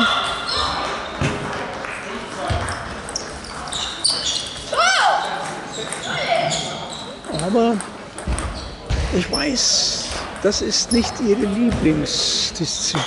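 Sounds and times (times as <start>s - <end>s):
murmur of voices: 0.0s - 13.0s
table tennis balls clicking: 7.1s - 8.6s.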